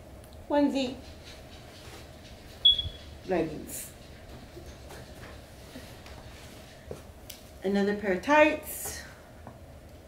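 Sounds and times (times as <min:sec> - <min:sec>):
short high-pitched squeak: 0:02.6 - 0:03.1.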